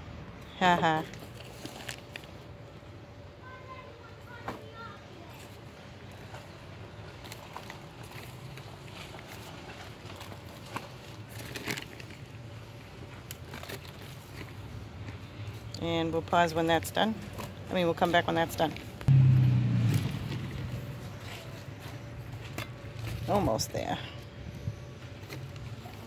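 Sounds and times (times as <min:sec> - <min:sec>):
steady low hum: 0:18.8 - 0:26.0.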